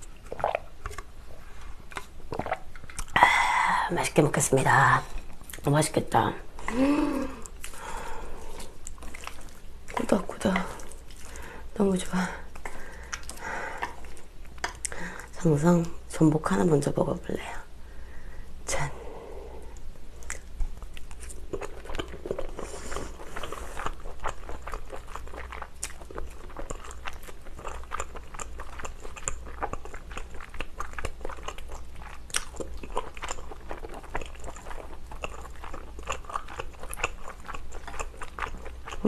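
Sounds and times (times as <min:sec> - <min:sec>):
steady low hum: 0:00.0 - 0:39.0
mouth chewing clicks and smacks: 0:01.9 - 0:03.2, 0:19.8 - 0:22.6, 0:23.4 - 0:39.0.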